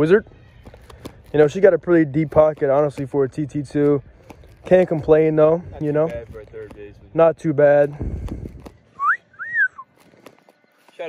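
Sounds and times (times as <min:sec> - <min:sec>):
person wolf whistling: 0:09.0 - 0:09.9.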